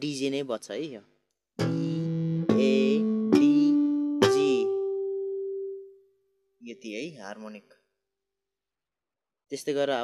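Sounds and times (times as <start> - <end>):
bass guitar harmonic ringing: 1.6 - 6.0.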